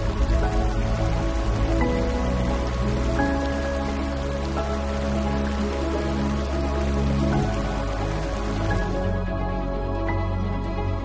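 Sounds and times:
water rushing over rapids: 0:00.0 - 0:10.1
slow music with sustained chords: 0:00.0 - 0:11.0.

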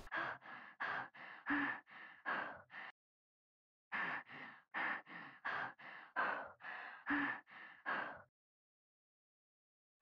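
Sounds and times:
woman breathing rapidly and heavily: 0:00.0 - 0:03.0, 0:03.9 - 0:08.3.

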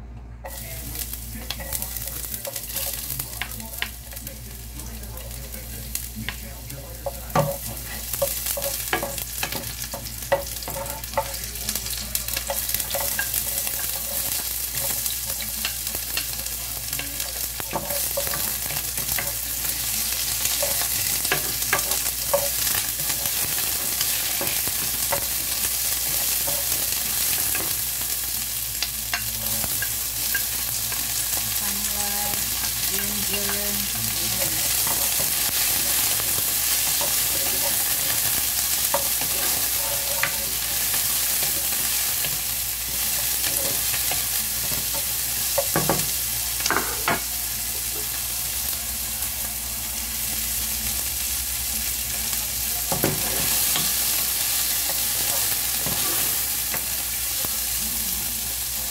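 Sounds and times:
onion sizzling in frying pan: 0:00.0 - 0:58.9.

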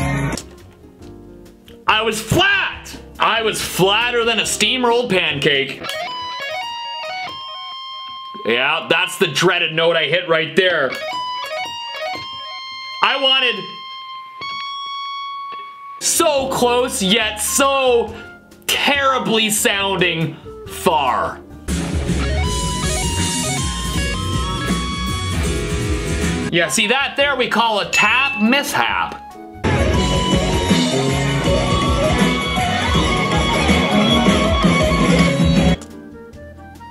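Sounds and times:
electric guitar tapping lick: 0:05.7 - 0:09.1, 0:10.7 - 0:16.1, 0:21.7 - 0:26.5, 0:28.0 - 0:36.0
live band playing: 0:29.6 - 0:35.9.

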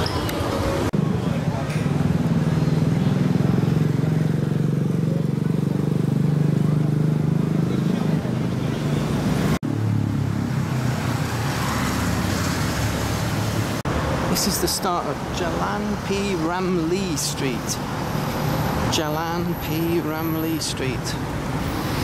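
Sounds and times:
cars driving past: 0:00.0 - 0:22.0
vehicle engine: 0:00.0 - 0:22.0
motorcycle passing: 0:00.7 - 0:14.2
voices: 0:14.3 - 0:18.0, 0:18.9 - 0:21.4.

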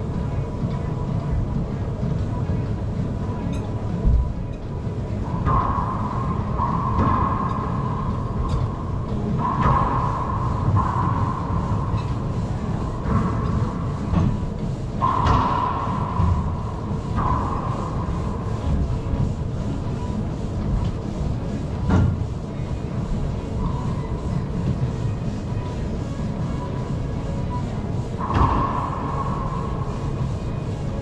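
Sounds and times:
steady low rumble: 0:00.0 - 0:31.0.

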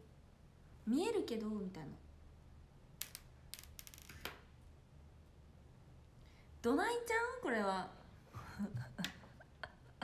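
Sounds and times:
low steady hum: 0:00.0 - 0:03.6.

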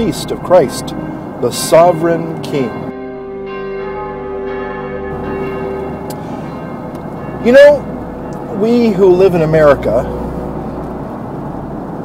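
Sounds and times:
bell chime ringing: 0:00.0 - 0:10.9.

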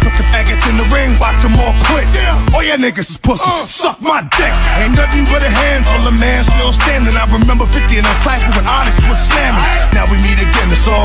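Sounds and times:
rapping over a heavy bass beat: 0:00.0 - 0:11.0.

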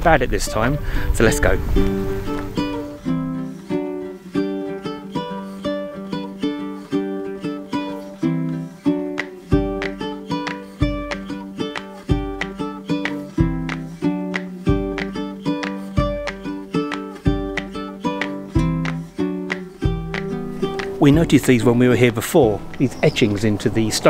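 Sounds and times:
plucked-string instrumental tune: 0:00.0 - 0:24.0.

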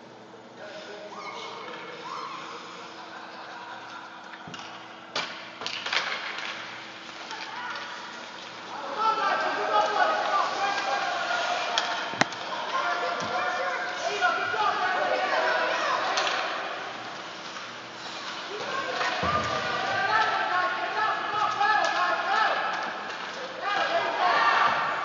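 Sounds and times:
hockey sticks and puck clacking: 0:04.5 - 0:08.6, 0:21.4 - 0:23.5.

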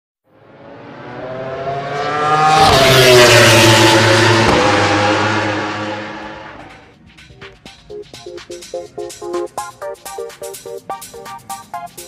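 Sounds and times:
fast vehicle engine passing by: 0:00.3 - 0:06.9.

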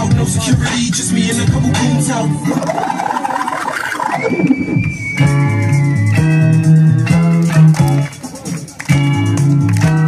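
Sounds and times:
high-pitched whinnying laugh: 0:02.5 - 0:04.8.

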